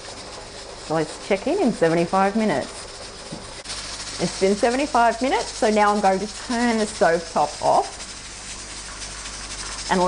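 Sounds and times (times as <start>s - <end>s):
steam hissing from canner: 0.0s - 10.0s.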